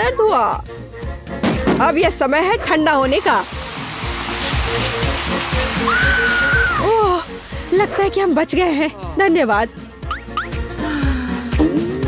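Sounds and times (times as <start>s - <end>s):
background music: 0.0s - 12.0s
fire extinguisher hissing: 2.9s - 8.6s.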